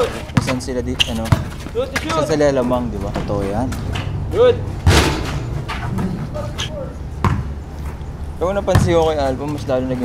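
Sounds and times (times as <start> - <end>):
basketball bouncing on court: 0.0 - 2.2, 7.2 - 7.6, 8.6 - 9.2
basketball banging backboard: 1.2 - 2.2, 4.8 - 6.3, 7.2 - 7.5, 8.7 - 9.1
faint voices: 5.8 - 7.1.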